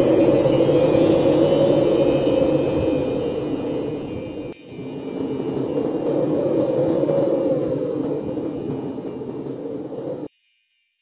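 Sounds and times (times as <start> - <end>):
shimmering chime jingle: 0.0 - 11.0.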